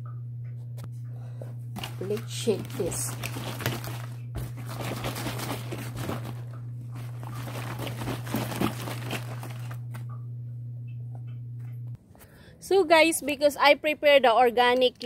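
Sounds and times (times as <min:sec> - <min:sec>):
plastic jug crinkling: 0:01.7 - 0:10.2
liquid sloshing: 0:01.8 - 0:10.1.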